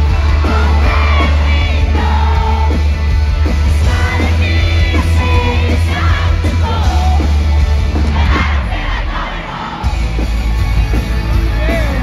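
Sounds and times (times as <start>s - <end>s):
crowd yelling and screaming: 0.0s - 12.0s
live rock band playing: 0.0s - 12.0s.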